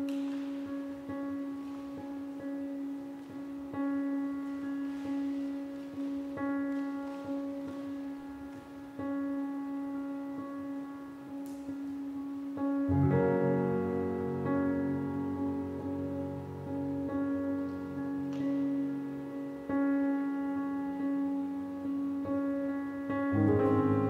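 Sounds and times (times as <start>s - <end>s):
soft slow piano notes: 0.0s - 24.0s.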